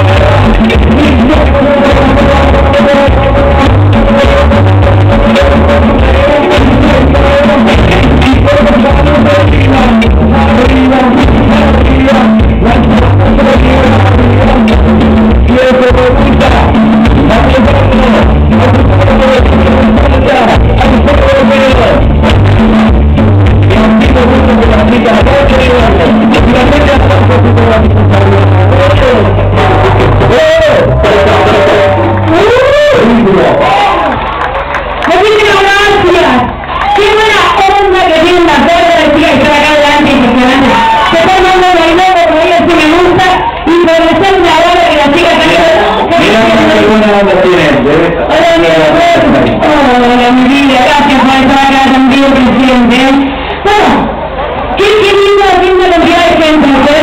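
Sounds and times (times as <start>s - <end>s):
bass guitar line: 0.0s - 57.0s
live band music: 0.0s - 57.0s.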